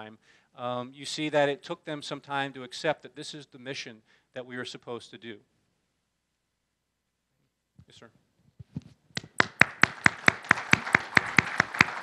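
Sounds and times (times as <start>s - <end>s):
nearby hands clapping evenly: 9.2s - 12.0s
audience applause: 9.3s - 12.0s.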